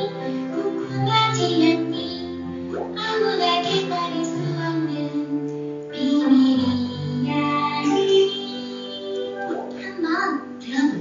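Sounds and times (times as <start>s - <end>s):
child singing: 0.0s - 2.4s, 3.0s - 10.9s.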